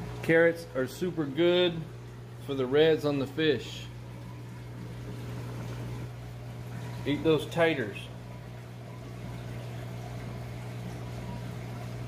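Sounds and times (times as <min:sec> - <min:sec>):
low electrical hum: 0:00.0 - 0:12.0
water trickling and bubbling: 0:00.0 - 0:12.0.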